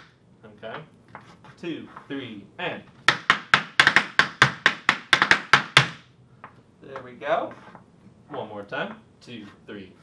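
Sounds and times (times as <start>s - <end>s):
hard shoes tapping on wooden board: 3.0s - 7.1s.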